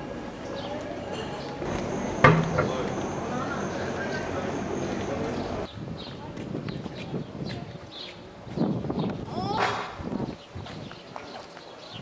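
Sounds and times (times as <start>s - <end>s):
faint voices of people: 0.0s - 10.0s.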